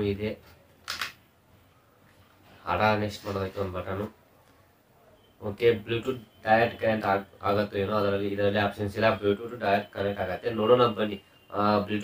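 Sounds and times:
person speaking: 0:02.4 - 0:04.3.

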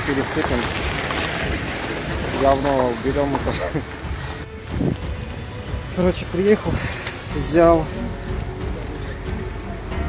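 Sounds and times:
light rain pattering: 0:00.0 - 0:10.0.

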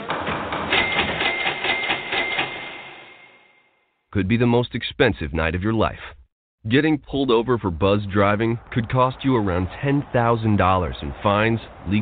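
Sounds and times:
printer rattling: 0:00.0 - 0:02.6.

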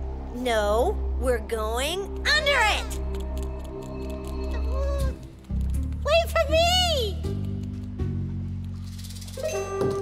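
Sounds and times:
cartoon background music: 0:00.3 - 0:10.0.

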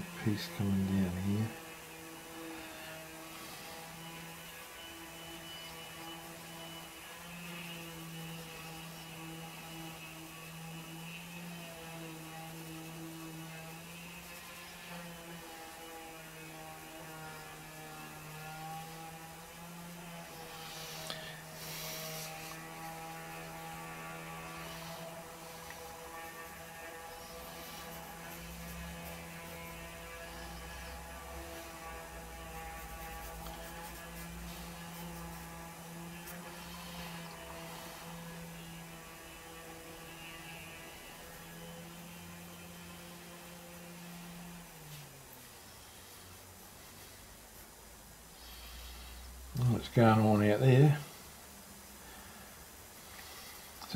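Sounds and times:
distant string trimmer buzzing: 0:00.0 - 0:47.2, 0:48.3 - 0:53.9.

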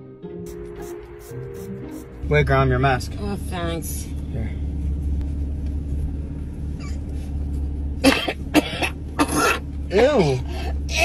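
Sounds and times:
car cabin hum: 0:00.7 - 0:11.0
woman coughing: 0:08.0 - 0:09.6.

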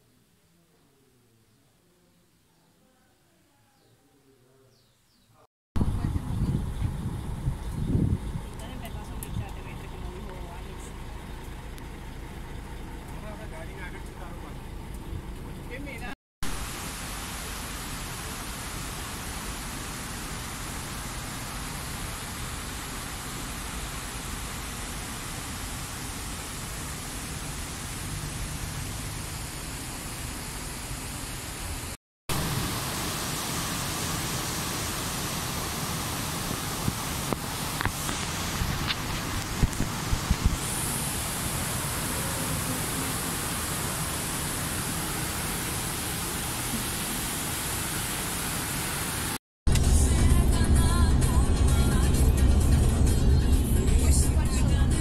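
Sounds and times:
water rushing over weirs: 0:16.4 - 0:49.8.

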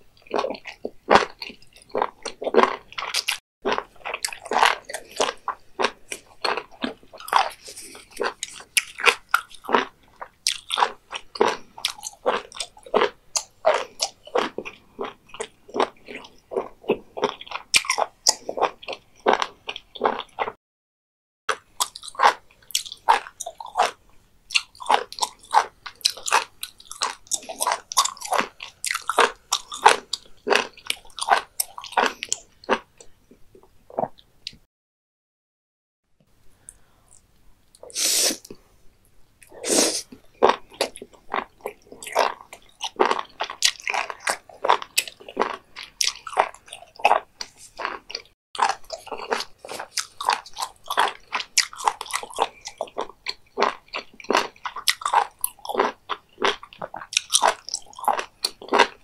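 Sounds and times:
wet crunchy chewing: 0:00.2 - 0:20.6, 0:21.5 - 0:33.3, 0:39.4 - 0:59.0.

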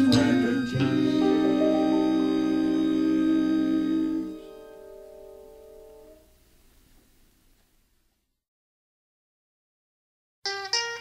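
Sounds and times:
band final chord ringing: 0:00.0 - 0:06.3.

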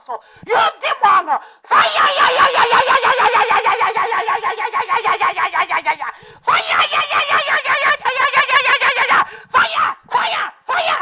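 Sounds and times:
woman shouting fast syllables: 0:00.0 - 0:11.0.

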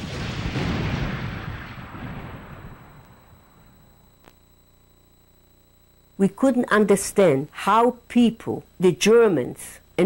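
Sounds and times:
explosion rumble: 0:00.0 - 0:03.9.

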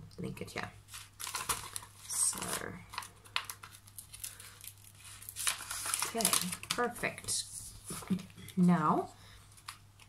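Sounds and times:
backing paper peeling crackle: 0:00.9 - 0:08.3.

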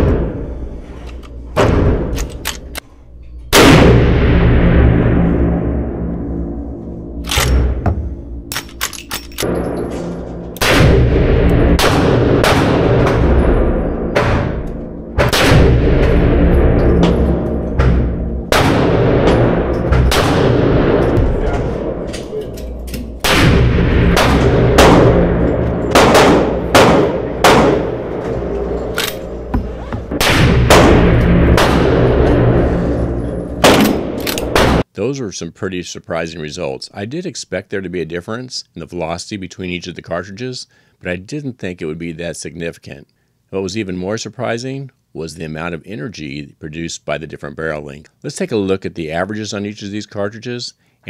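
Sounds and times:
gunshots with reverberant tail: 0:03.5 - 0:08.6, 0:09.4 - 0:34.8.

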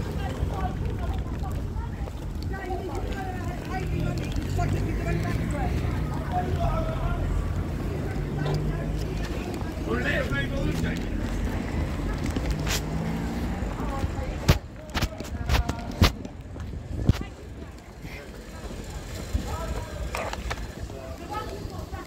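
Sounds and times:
background voices: 0:00.0 - 0:22.0
vehicle engine rumbling: 0:00.0 - 0:22.0.

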